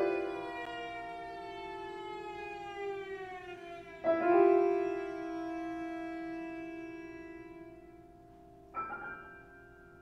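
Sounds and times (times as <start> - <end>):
cello bowed glissando: 0.0 - 8.8
piano resonance ringing: 0.0 - 10.0.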